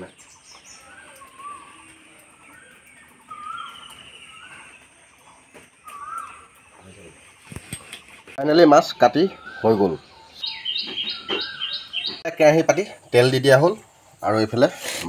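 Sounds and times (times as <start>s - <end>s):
birds calling: 0.0s - 15.0s.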